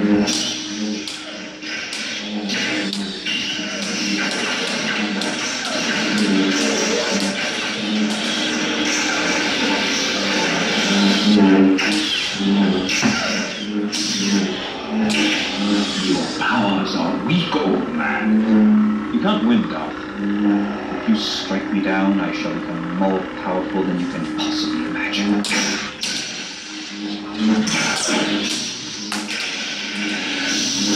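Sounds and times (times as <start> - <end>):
lightsabers clashing: 0.0 - 30.9
lightsabers humming: 0.0 - 30.9
music: 0.0 - 30.9
voices: 0.0 - 30.9.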